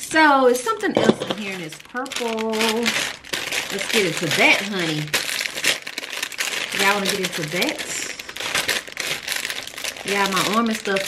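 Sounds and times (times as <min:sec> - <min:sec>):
woman talking: 0:00.0 - 0:03.0, 0:03.7 - 0:05.2, 0:06.7 - 0:08.3, 0:10.0 - 0:11.0
plastic bag crinkling: 0:01.0 - 0:11.0.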